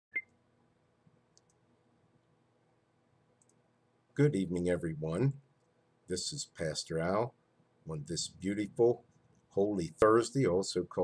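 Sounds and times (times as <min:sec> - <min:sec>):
faint ticks: 0:03.4 - 0:03.6.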